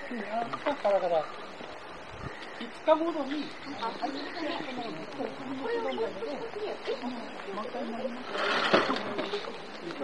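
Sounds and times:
people talking: 2.6 - 10.0.

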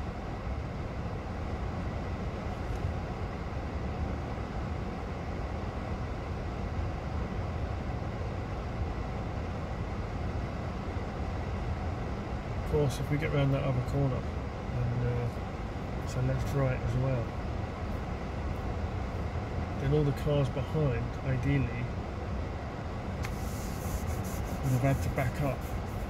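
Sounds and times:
idling engines low rumble: 0.0 - 26.0.

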